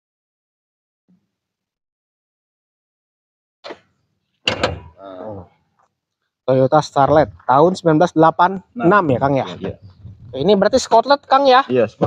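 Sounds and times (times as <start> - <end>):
car door slamming: 4.5 - 5.0.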